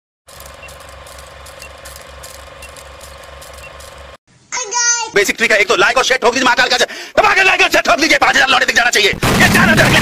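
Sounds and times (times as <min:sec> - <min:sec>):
film projector clatter: 0:00.3 - 0:04.2.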